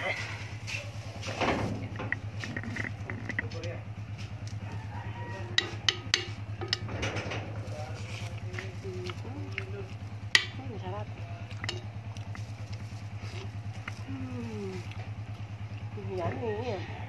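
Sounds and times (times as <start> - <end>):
small engine idling: 0.0 - 17.0.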